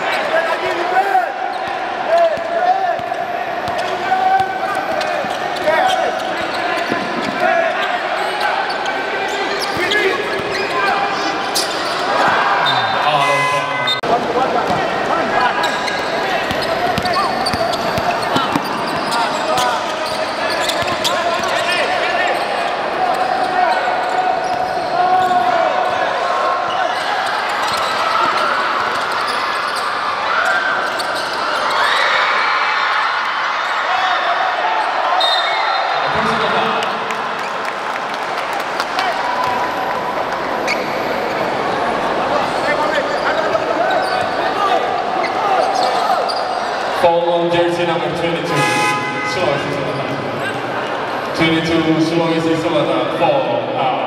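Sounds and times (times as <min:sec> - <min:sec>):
voices in a hall: 0:00.0 - 0:54.0
basketball bouncing on wooden court: 0:16.5 - 0:19.7, 0:20.6 - 0:21.1.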